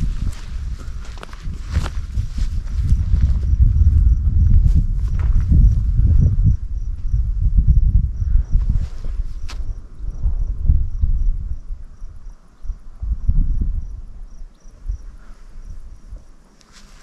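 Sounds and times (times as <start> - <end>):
footsteps on dirt trail: 0.0 - 7.2, 16.2 - 17.0
high insect chirp: 0.0 - 16.8
wind buffeting microphone: 0.0 - 17.0.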